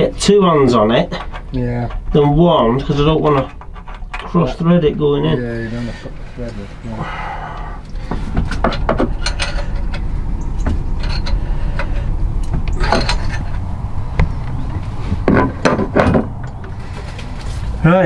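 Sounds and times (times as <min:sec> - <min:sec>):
steady low hum: 0:00.0 - 0:18.0
spanner clinking on metal: 0:08.5 - 0:13.6.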